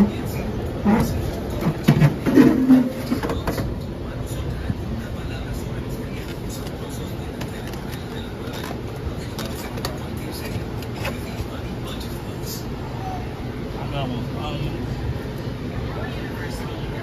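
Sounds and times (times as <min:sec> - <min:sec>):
low background noise: 0:00.0 - 0:17.0.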